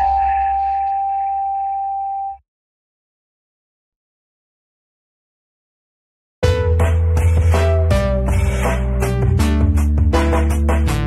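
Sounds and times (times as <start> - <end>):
steady mid-pitched electronic tone: 0.0 - 2.4.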